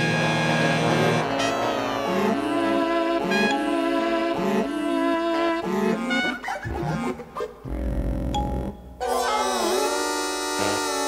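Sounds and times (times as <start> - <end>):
synthesizer sustained notes: 0.0 - 6.1
low bass: 7.6 - 9.0.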